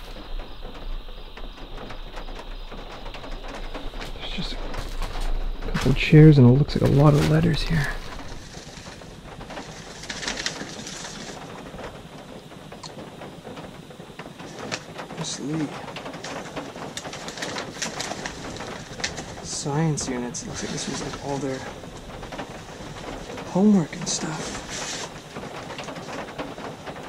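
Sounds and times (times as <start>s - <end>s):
papers rustling and crackling: 1.5s - 27.0s.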